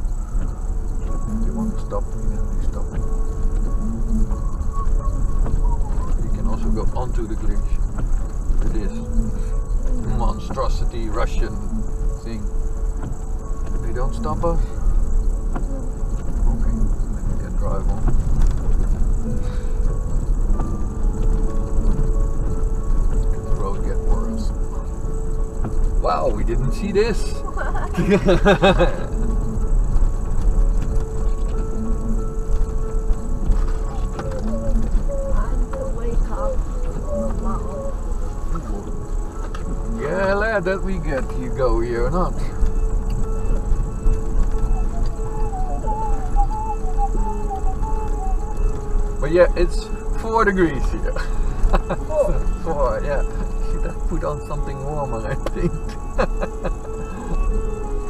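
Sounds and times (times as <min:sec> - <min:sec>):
car rolling over gravel: 0:00.0 - 0:58.0
steady whine: 0:00.0 - 0:58.0
thin wavering tune: 0:00.0 - 0:58.0
faint held tones: 0:28.9 - 0:58.0.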